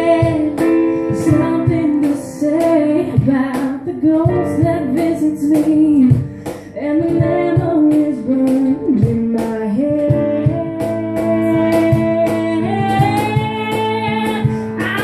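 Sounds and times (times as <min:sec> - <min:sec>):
woman singing: 0:00.0 - 0:15.0.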